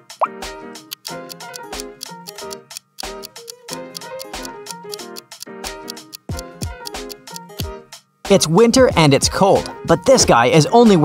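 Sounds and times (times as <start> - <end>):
light background music with beat: 0.0 - 11.0.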